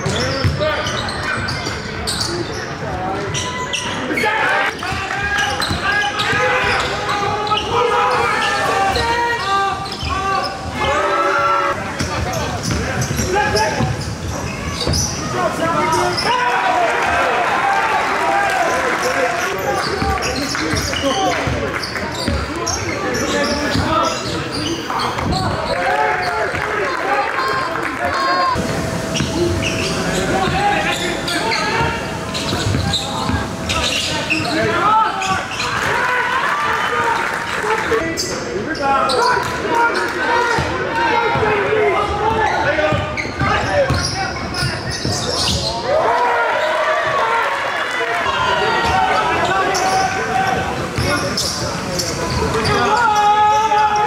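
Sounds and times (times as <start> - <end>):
indistinct echoing voices: 0.0 - 54.0.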